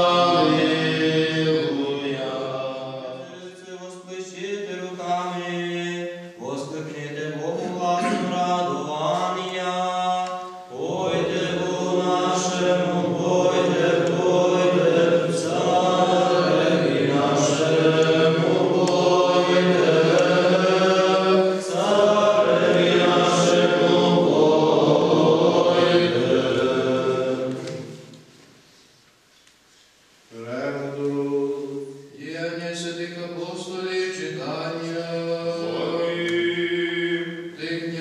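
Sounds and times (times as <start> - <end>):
men singing liturgical chant: 0.0 - 27.9, 30.4 - 38.0.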